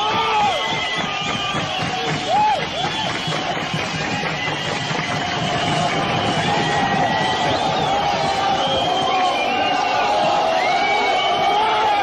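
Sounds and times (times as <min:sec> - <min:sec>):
concert crowd noise: 0:00.0 - 0:12.0.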